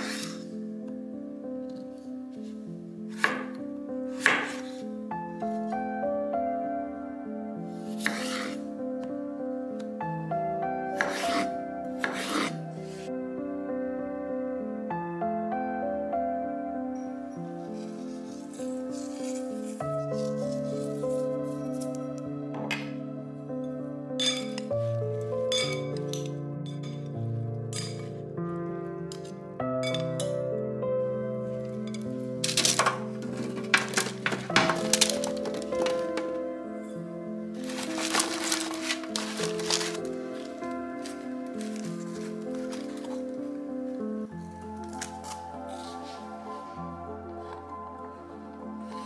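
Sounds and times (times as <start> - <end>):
background music: 0.0 - 49.0
knife chopping on wooden board: 3.1 - 3.6, 4.2 - 4.8, 8.0 - 8.6, 11.0 - 12.5.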